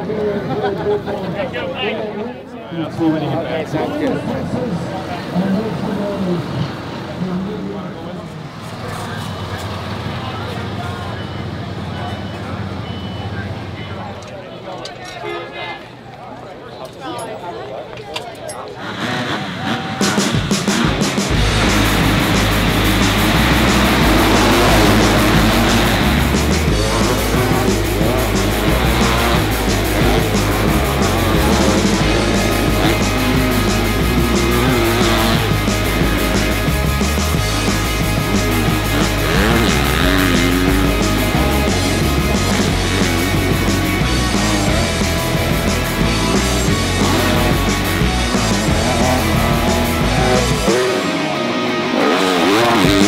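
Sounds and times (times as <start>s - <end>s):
motocross bike engines: 0.0s - 15.4s, 16.3s - 53.0s
loud rock music: 19.0s - 53.0s.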